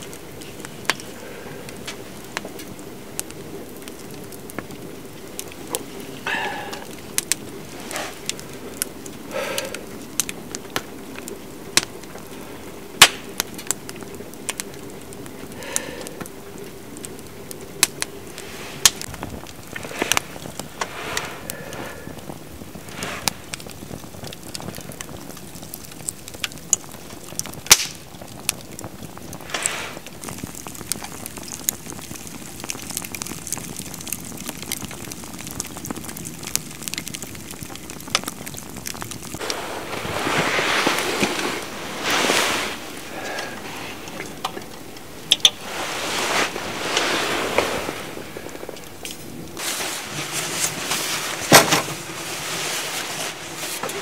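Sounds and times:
wood fire crackling and popping: 0:00.0 - 0:54.0
loud rustling close by: 0:39.3 - 0:44.2, 0:45.6 - 0:48.8, 0:49.5 - 0:54.0.

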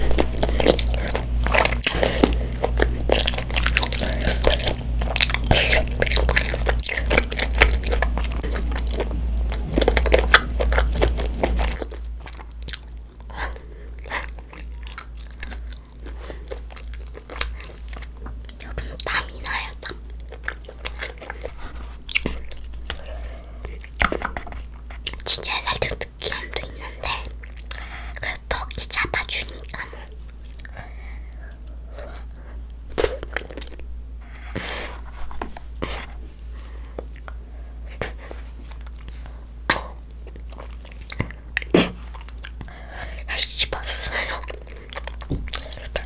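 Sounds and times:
wet chewing mouth sounds: 0:00.0 - 0:46.0.

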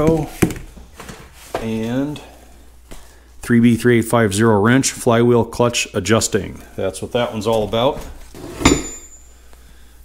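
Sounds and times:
metal wrench clinking on tools: 0:08.6 - 0:09.2.

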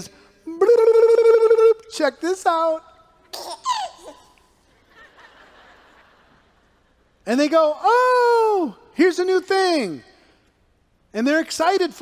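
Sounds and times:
baby-like giggle: 0:03.3 - 0:04.4.

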